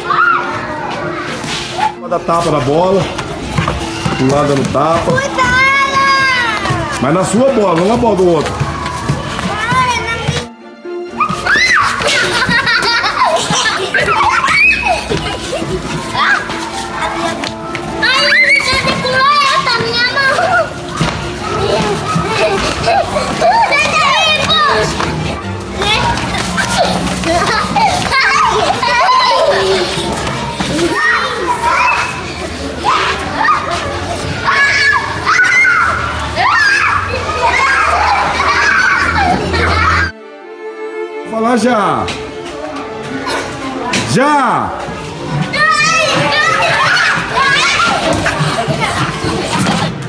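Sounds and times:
children shouting and laughing: 0.0s - 41.3s, 42.0s - 50.0s
background music: 0.0s - 50.0s.

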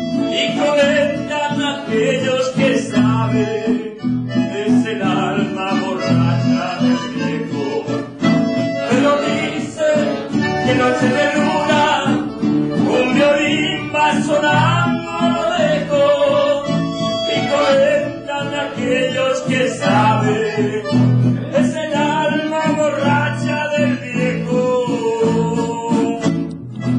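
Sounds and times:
acoustic guitars: 0.0s - 26.9s
man singing: 0.1s - 26.5s.

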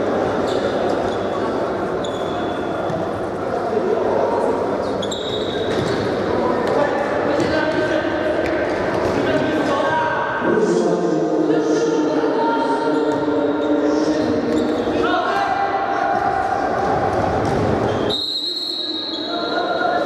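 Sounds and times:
short high squeaks: 5.0s - 5.6s
players shouting in hall: 15.0s - 17.8s.

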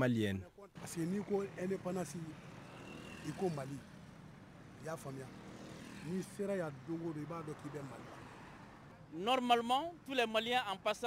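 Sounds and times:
street traffic hum: 0.4s - 11.0s.

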